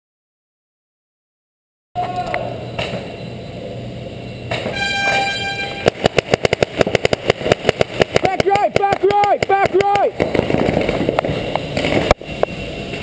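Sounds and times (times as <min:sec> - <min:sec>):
players shouting: 0:02.0 - 0:02.8, 0:08.2 - 0:10.2
air horn blast: 0:04.5 - 0:06.1.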